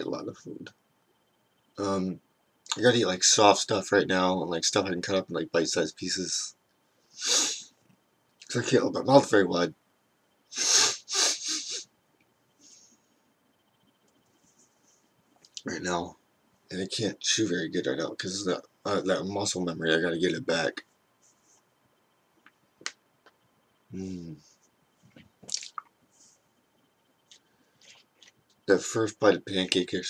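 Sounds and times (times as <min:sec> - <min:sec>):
faint small noises: 0:00.0 - 0:30.0
lip smacks: 0:25.4 - 0:25.9
tongue clicks: 0:25.5 - 0:25.9.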